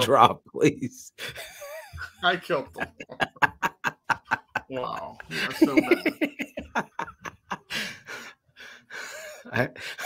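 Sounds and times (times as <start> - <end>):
man speaking: 0.0 - 1.2, 2.0 - 3.5, 4.6 - 6.6.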